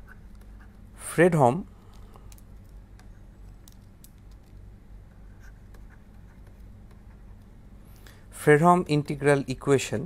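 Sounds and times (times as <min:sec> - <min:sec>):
stylus scratching on tablet screen: 0:00.0 - 0:00.8, 0:05.1 - 0:07.5
steady low hum: 0:00.0 - 0:10.0.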